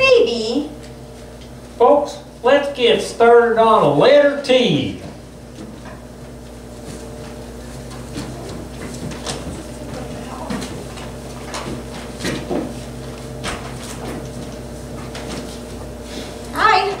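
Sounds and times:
low electrical hum: 0.0s - 17.0s
footsteps: 4.9s - 16.5s.

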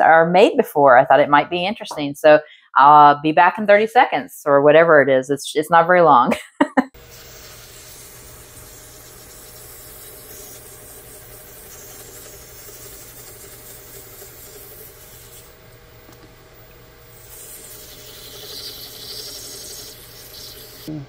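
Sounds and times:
sandpaper rubbing hiss: 7.0s - 15.6s, 17.1s - 20.9s
lathe motor hum: 7.0s - 20.9s.

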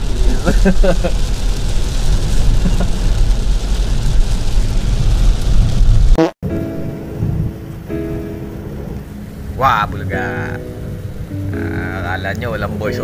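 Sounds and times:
heavy rain on car roof: 0.0s - 6.2s, 8.4s - 13.0s
tyre and road noise: 0.0s - 13.0s
background music: 6.4s - 13.0s.

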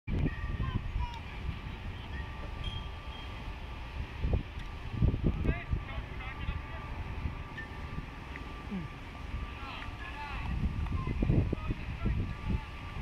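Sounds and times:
wind rumble on microphone: 0.1s - 13.0s
distant voices calling out: 4.7s - 13.0s.

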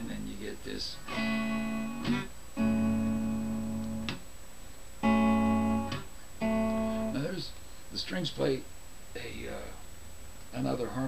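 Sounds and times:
electric guitar chords: 1.1s - 4.2s, 5.0s - 7.3s.

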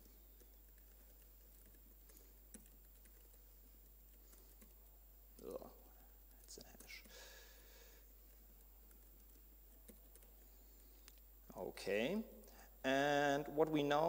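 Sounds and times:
keyboard typing: 0.0s - 5.6s, 8.2s - 10.6s.

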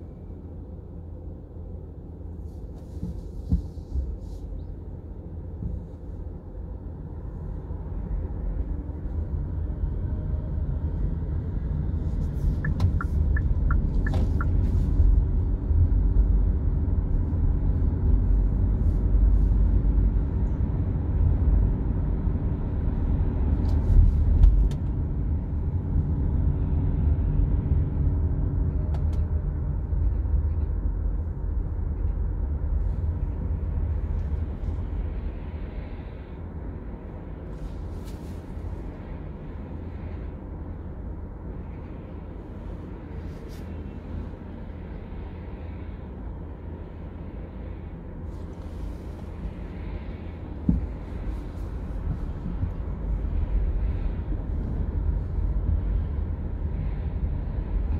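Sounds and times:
car engine rumble: 0.0s - 57.9s
tyres on the road: 0.0s - 57.9s.

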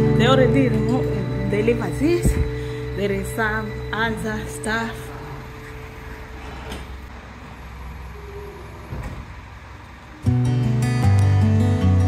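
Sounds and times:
guitar music: 0.0s - 6.4s, 10.2s - 12.0s
low rumble: 0.0s - 7.1s.

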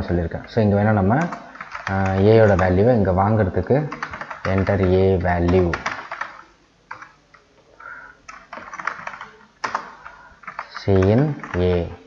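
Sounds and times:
computer keyboard typing: 0.4s - 3.0s, 3.7s - 7.4s, 8.2s - 12.0s.

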